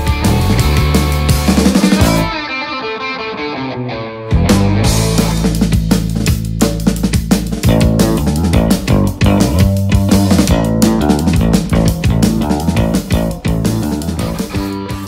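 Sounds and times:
music with bass and guitar: 0:00.0 - 0:15.0.

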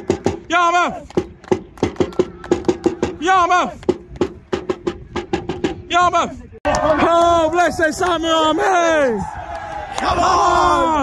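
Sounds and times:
supporters clapping in rhythm: 0:00.0 - 0:04.4, 0:09.4 - 0:10.2.

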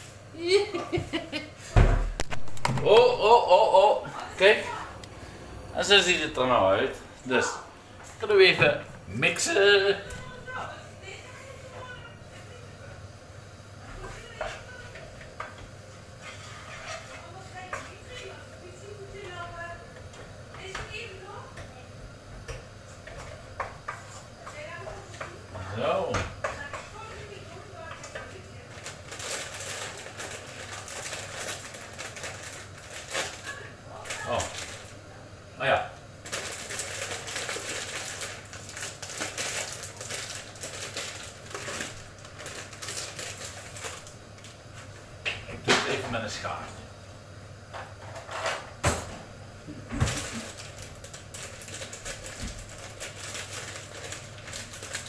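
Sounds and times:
food sizzling with crackles: 0:00.0 - 0:55.0
utensil scraping frying pan: 0:16.1 - 0:18.4.

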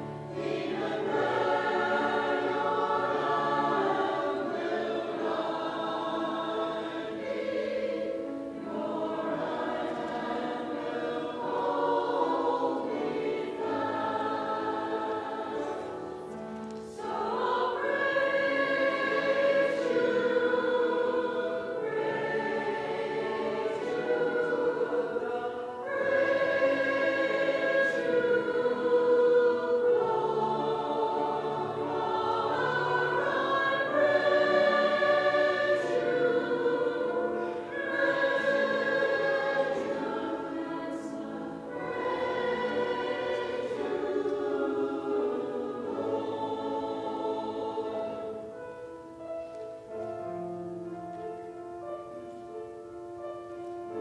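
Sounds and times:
choir singing: 0:00.0 - 0:52.2.

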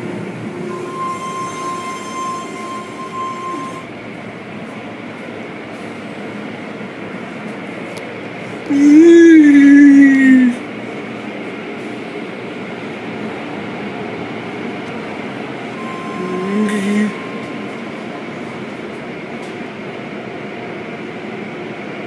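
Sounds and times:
brief pitched sound: 0:15.8 - 0:18.2.

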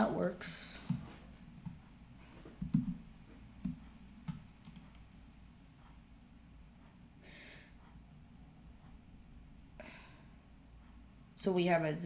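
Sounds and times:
keyboard and mouse clicks: 0:02.5 - 0:03.0, 0:03.6 - 0:05.0.

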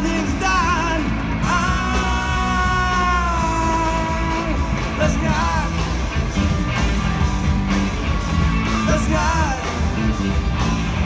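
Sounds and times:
man singing lead: 0:00.0 - 0:06.3, 0:08.6 - 0:10.2
live rock band: 0:00.0 - 0:11.0.

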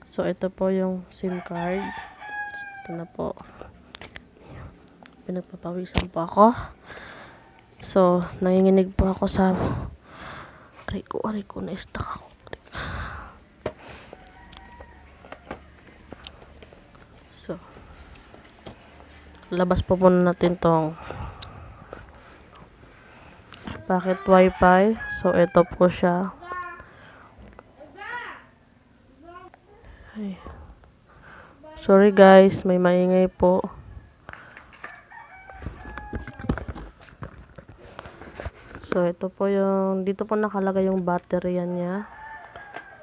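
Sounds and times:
steady low hum: 0:00.0 - 0:27.9
rooster crowing faintly: 0:14.0 - 0:16.1, 0:33.7 - 0:37.4, 0:42.0 - 0:43.0.

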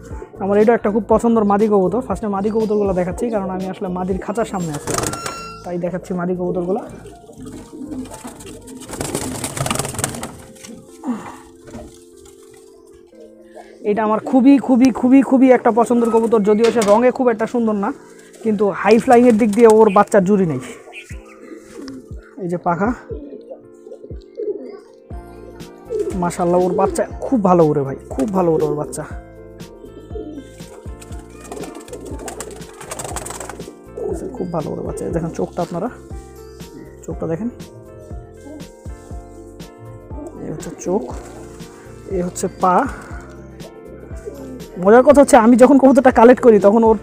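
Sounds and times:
pigeons cooing: 0:02.7 - 0:45.4
wings rustling: 0:04.3 - 0:05.7, 0:06.6 - 0:22.4, 0:29.7 - 0:44.8.

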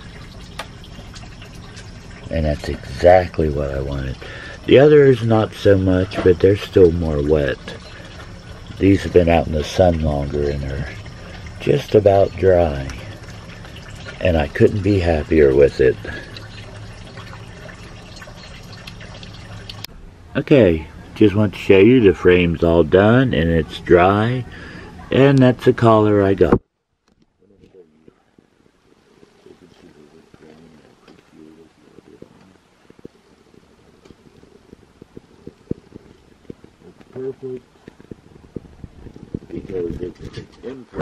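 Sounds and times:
low hum: 0:00.0 - 0:25.0.

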